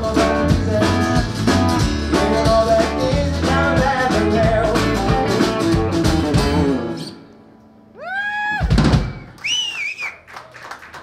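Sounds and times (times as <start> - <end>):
loud wavering whistle: 8.0 - 10.2
hand clapping: 9.3 - 11.0.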